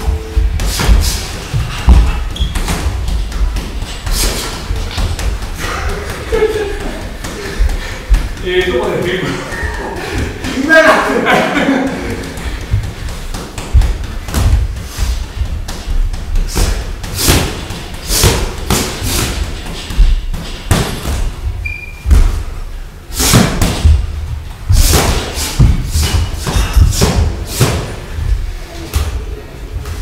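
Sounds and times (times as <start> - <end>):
boxing gloves thudding: 12.2 - 21.4.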